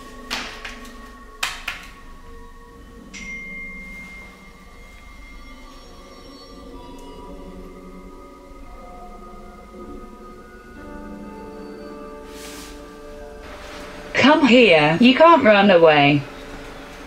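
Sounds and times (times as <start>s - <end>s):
soft chime-like music: 2.1s - 17.0s
held high tone: 2.8s - 16.6s.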